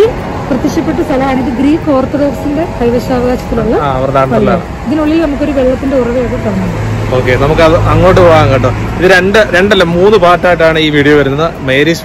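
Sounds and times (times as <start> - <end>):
vehicle engine humming: 0.0 - 12.0
man talking: 7.1 - 12.0.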